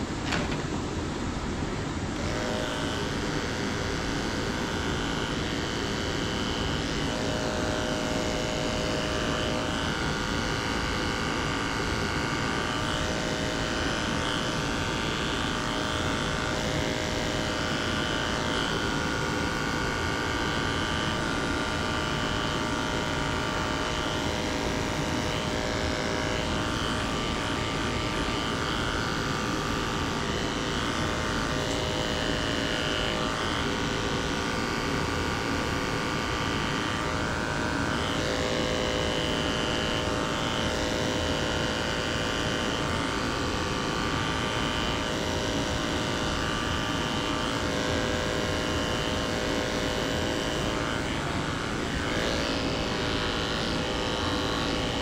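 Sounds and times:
electric clipper running: 0:00.0 - 0:55.0.

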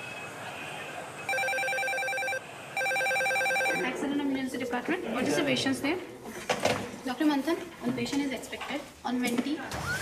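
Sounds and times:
steady background noise: 0:00.0 - 0:10.0
telephone ringing: 0:01.3 - 0:04.0.

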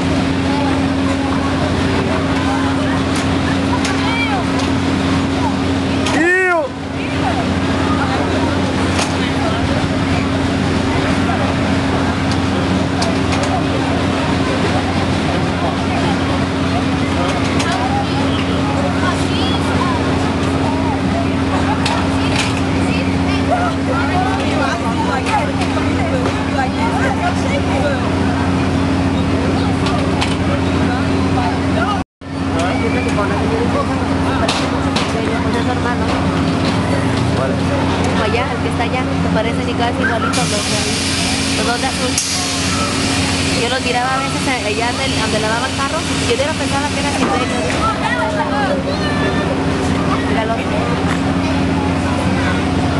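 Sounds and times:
low machine hum: 0:00.0 - 0:52.9
many people talking: 0:00.0 - 0:52.9.

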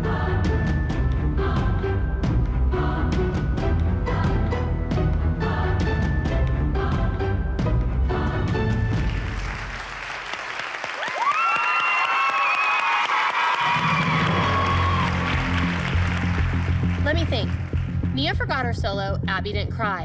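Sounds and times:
low background music: 0:00.0 - 0:10.0, 0:14.0 - 0:20.0
audience applauding: 0:09.0 - 0:17.9
cheers and whoops: 0:10.9 - 0:15.6
dance music: 0:13.7 - 0:20.0.

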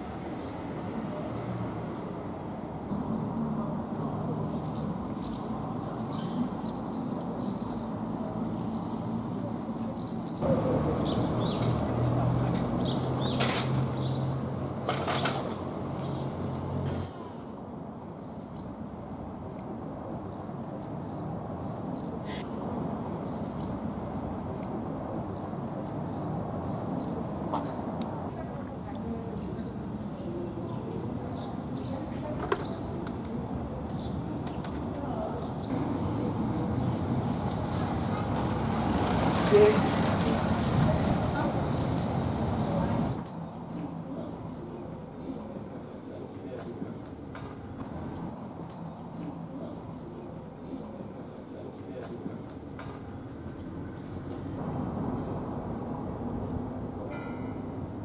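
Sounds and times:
low background murmur: 0:00.0 - 0:58.0
faint voices: 0:23.9 - 0:58.0.

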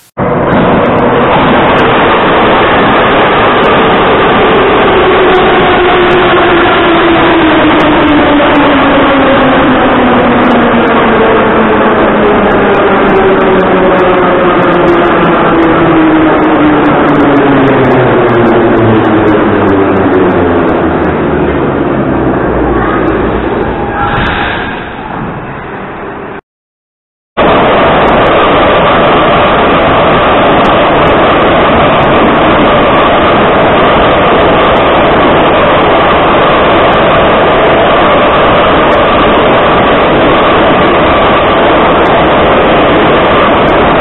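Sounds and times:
train wheels rumbling on rail: 0:00.0 - 0:26.4, 0:27.4 - 0:44.0.

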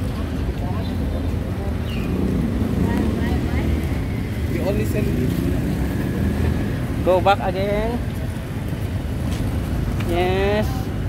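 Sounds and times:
faint voices of passers-by: 0:00.0 - 0:11.0
traffic rumble: 0:00.0 - 0:11.0.

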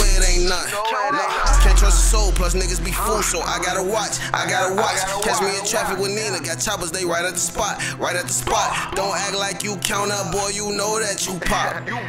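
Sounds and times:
deep bass: 0:00.0 - 0:00.6, 0:01.5 - 0:04.4
rapping over a beat: 0:00.0 - 0:12.0.

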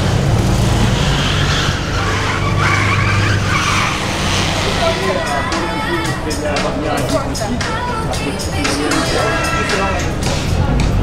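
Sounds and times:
car engine running: 0:00.0 - 0:11.0
street traffic: 0:00.0 - 0:11.0
voices: 0:01.8 - 0:11.0
music: 0:04.8 - 0:11.0.

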